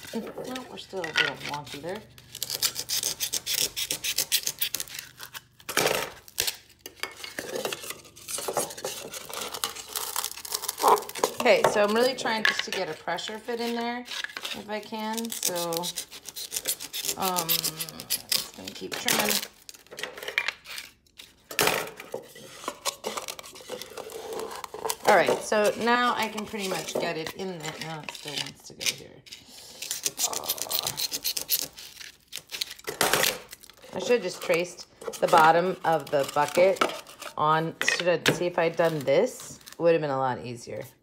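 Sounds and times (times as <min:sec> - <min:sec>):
scratchy rubbing: 0:00.0 - 0:05.3, 0:12.7 - 0:18.8
scissors cutting styrofoam: 0:00.0 - 0:19.9, 0:22.4 - 0:39.8.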